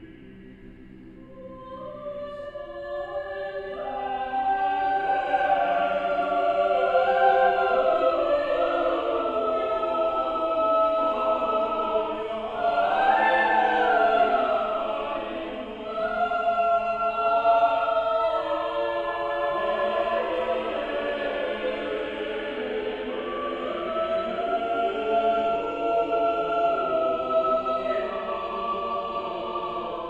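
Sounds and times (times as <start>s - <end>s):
church choir singing: 0.0s - 30.0s.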